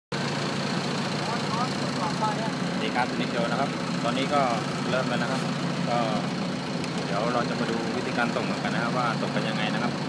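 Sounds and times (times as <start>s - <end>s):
generator humming with whine: 0.1s - 10.0s.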